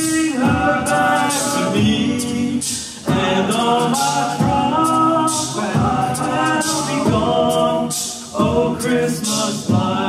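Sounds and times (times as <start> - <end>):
hissing percussive hits: 0.0 - 10.0
male a cappella group singing: 0.0 - 10.0.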